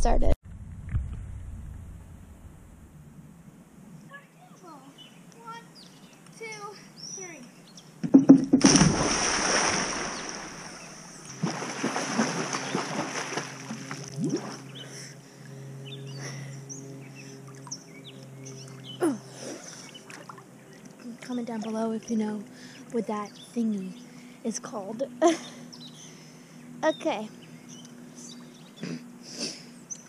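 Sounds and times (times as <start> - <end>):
churning water: 8.4 - 14.8, 18.7 - 23.1
loud splash into pool: 8.6 - 10.8, 11.4 - 14.6
swimming strokes splashing: 8.6 - 14.8.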